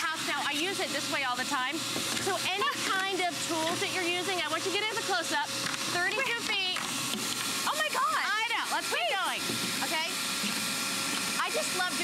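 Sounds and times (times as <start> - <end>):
vacuum motor whining: 0.0 - 12.0.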